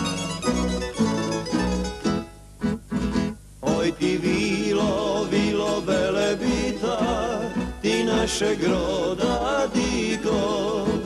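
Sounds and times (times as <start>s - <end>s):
double bass: 0.0s - 11.0s
person singing: 3.6s - 11.0s.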